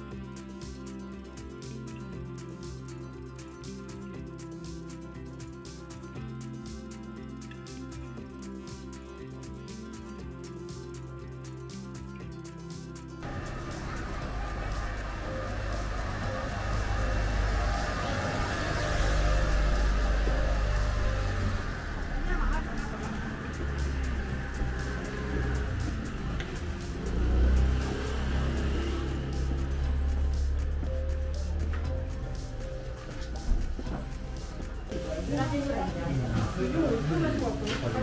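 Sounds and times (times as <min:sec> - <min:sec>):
background music: 0:00.0 - 0:38.0
voices: 0:13.2 - 0:30.8, 0:32.0 - 0:38.0
low street rumble: 0:13.2 - 0:38.0
traffic: 0:13.2 - 0:38.0.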